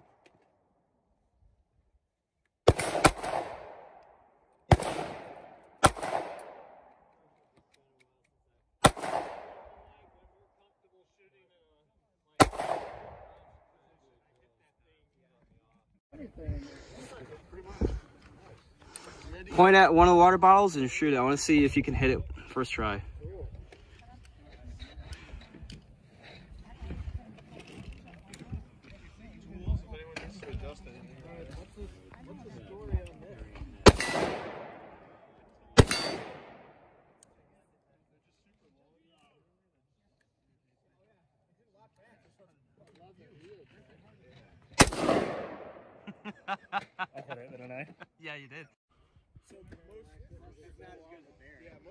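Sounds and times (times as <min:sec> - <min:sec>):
gunshot with echo: 0:02.7 - 0:03.9, 0:04.7 - 0:06.8, 0:08.8 - 0:09.8, 0:12.4 - 0:13.4, 0:33.8 - 0:35.0, 0:35.8 - 0:36.8, 0:44.8 - 0:46.0.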